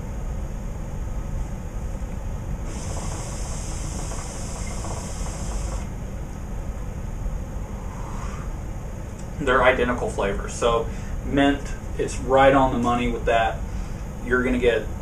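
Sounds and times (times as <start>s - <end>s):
low steady hum: 0.0s - 15.0s
hookah draw hiss: 2.6s - 5.9s.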